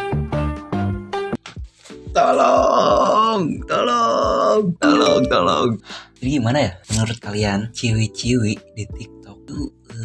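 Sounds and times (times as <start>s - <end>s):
man's wordless vocal outbursts: 2.0s - 5.9s.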